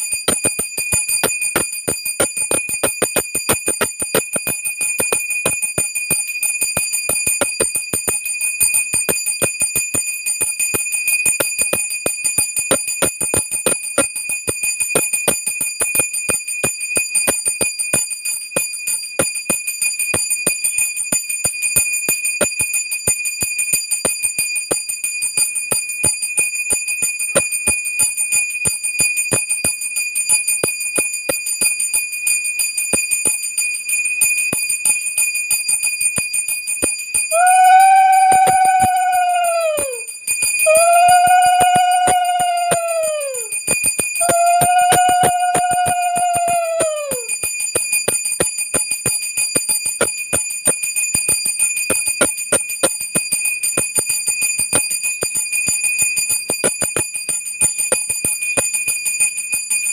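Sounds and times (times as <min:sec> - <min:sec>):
hand bell ringing: 0:25.7 - 0:59.9
held note falling pitch: 0:37.4 - 0:40.0, 0:40.7 - 0:43.5, 0:44.2 - 0:47.3.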